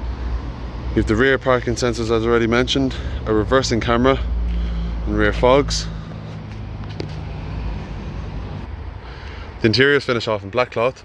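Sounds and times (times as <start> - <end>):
low engine hum: 0.0 - 9.6
road traffic: 0.0 - 11.0.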